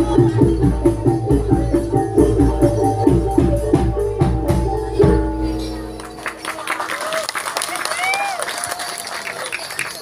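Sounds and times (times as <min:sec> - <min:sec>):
audience applauding: 0:06.0 - 0:10.0.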